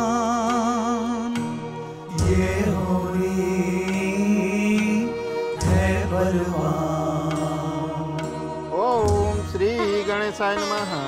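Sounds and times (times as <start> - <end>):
steady low drone: 0.0 - 9.9.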